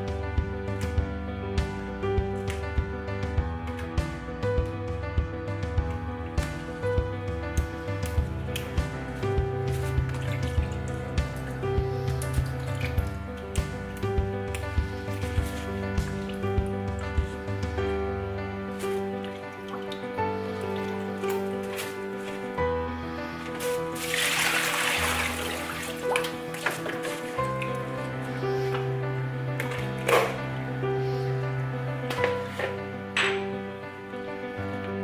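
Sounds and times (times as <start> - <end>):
background music: 0.0 - 35.0
water splashing into metal sink: 8.0 - 17.4, 23.6 - 28.2.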